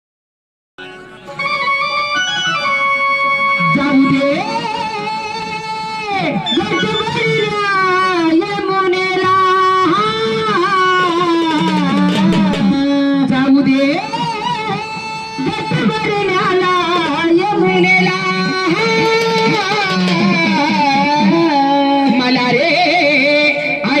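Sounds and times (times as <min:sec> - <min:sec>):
amplified live music: 0:00.8 - 0:24.0.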